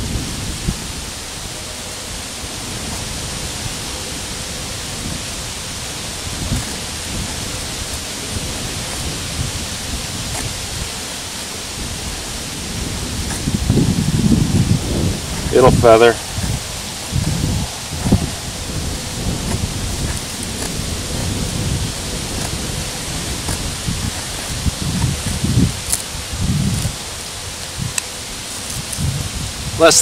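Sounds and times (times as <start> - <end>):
wind noise on microphone: 0.0 - 30.0
knife scraping wood: 6.2 - 11.5, 19.4 - 26.1.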